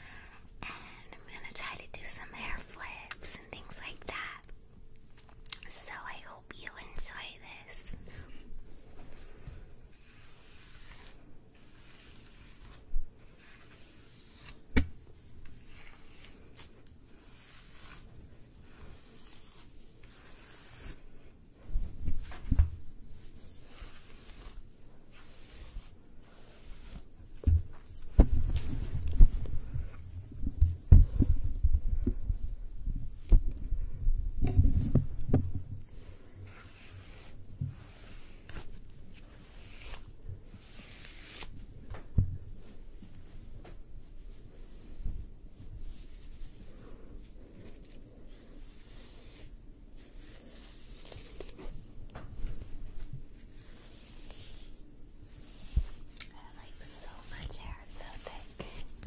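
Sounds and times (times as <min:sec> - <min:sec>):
woman whispering: 0:00.6 - 0:04.5, 0:05.6 - 0:08.1, 0:56.2 - 0:58.9
hair flipping thuds: 0:14.7 - 0:15.1, 0:21.6 - 0:22.9, 0:27.3 - 0:35.9.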